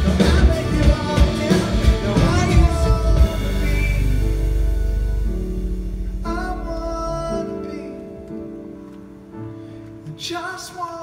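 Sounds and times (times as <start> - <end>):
keyboard: 0.0 - 11.0.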